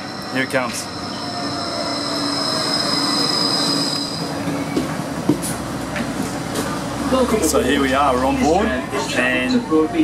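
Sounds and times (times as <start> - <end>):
tram high-pitched whine: 0.0 - 10.0.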